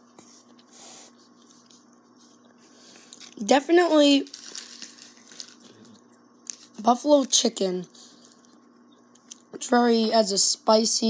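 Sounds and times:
faint steady hum: 0:00.0 - 0:11.0
person speaking: 0:03.2 - 0:04.4, 0:05.6 - 0:08.0.

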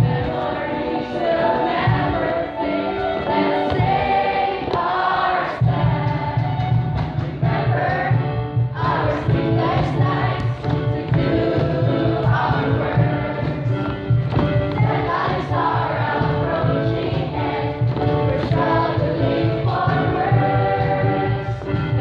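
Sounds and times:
children's choir singing: 0:00.0 - 0:22.0
low musical accompaniment: 0:00.0 - 0:22.0.

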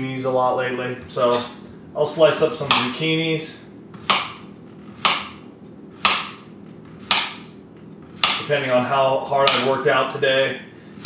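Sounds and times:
knife chopping on cutting board: 0:02.6 - 0:03.0, 0:04.0 - 0:05.4, 0:06.0 - 0:07.5, 0:08.1 - 0:08.5, 0:09.4 - 0:09.8.

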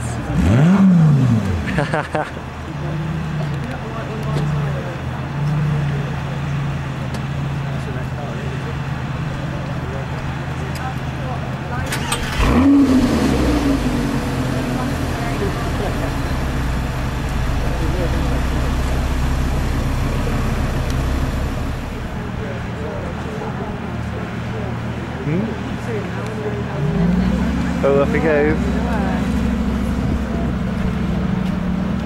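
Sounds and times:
sports car engine idling: 0:00.0 - 0:32.0.

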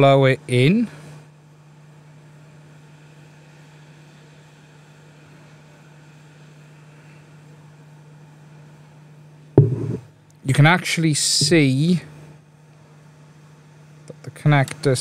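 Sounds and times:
loud knock: 0:09.6 - 0:10.0
low hum: 0:09.6 - 0:10.1.

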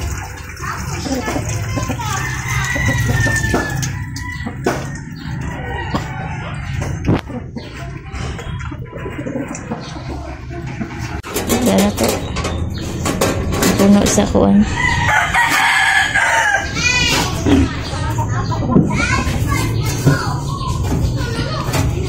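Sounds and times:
chickens clucking: 0:00.1 - 0:22.0
rooster crowing: 0:02.0 - 0:06.7, 0:14.6 - 0:16.8.

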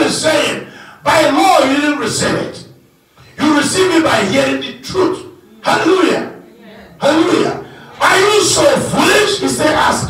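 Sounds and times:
man's voice over microphone: 0:00.0 - 0:02.8, 0:03.4 - 0:06.4, 0:07.0 - 0:10.0.

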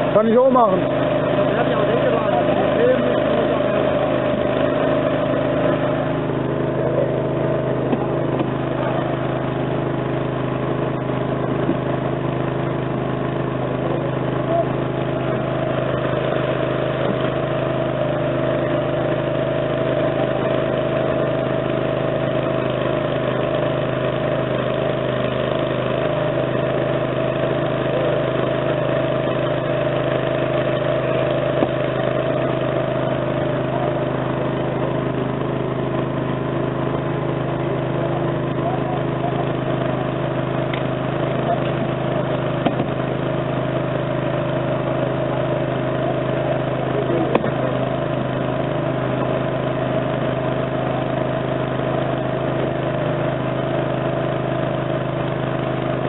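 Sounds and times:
engine running steadily: 0:00.0 - 0:56.0.

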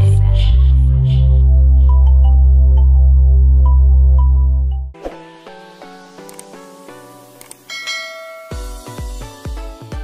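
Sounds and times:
background music: 0:00.0 - 0:10.0
quick clicks: 0:06.2 - 0:06.6, 0:07.4 - 0:07.7
bell ding: 0:07.7 - 0:09.1.

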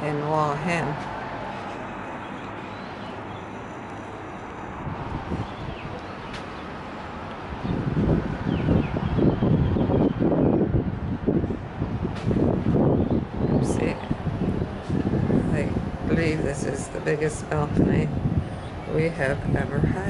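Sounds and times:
outdoor background noise: 0:00.0 - 0:20.0
wind buffeting microphone: 0:00.0 - 0:20.0.

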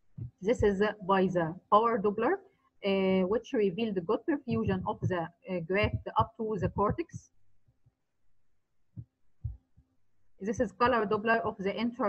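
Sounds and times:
soft low thumps: 0:00.0 - 0:01.0, 0:03.8 - 0:07.9, 0:08.9 - 0:11.7.

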